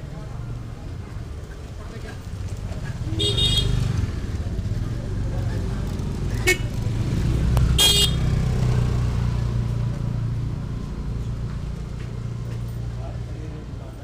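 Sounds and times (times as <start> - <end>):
vehicle engine rumbling: 0.0 - 14.0
vehicle horn honking: 3.2 - 3.8, 6.4 - 6.7, 7.8 - 8.3.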